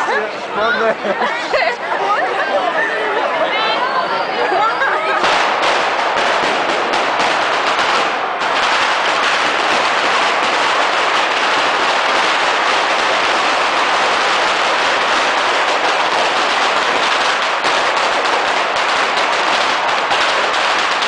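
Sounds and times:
firecrackers crackling rattle: 5.2s - 21.0s.

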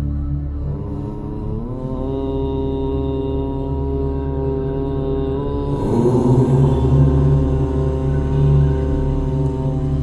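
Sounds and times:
om chanting on one note: 0.6s - 10.0s.

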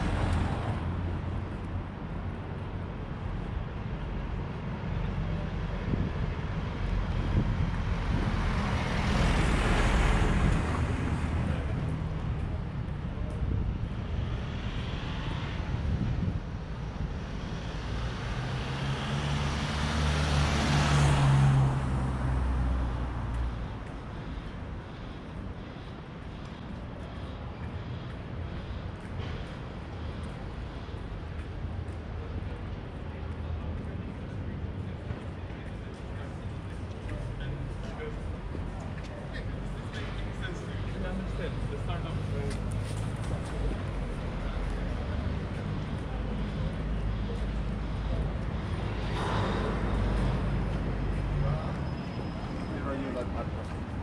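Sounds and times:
city traffic hum: 0.0s - 54.0s.

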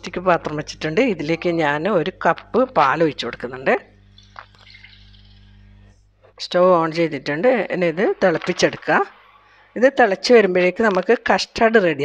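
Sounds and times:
milk splashing into saucepan: 4.0s - 5.8s.

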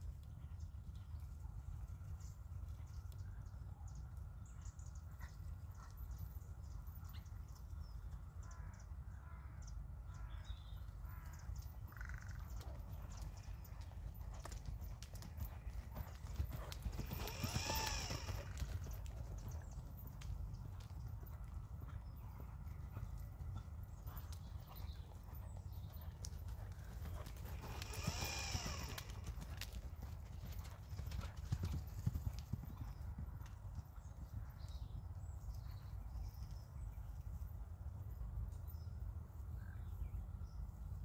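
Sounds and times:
horse trotting hoofbeats: 11.2s - 36.7s.

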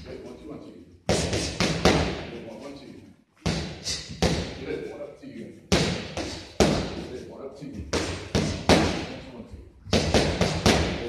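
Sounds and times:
boxing gloves punching mitts: 1.1s - 2.3s, 5.7s - 7.1s, 7.9s - 9.2s, 9.9s - 11.0s.

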